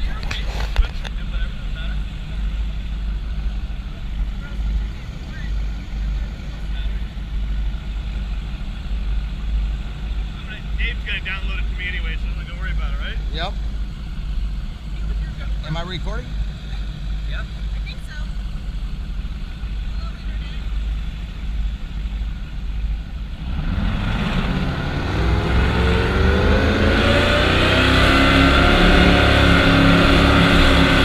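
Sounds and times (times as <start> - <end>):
faint voices: 0.0 - 23.4
boat engine rumbling: 0.0 - 31.0.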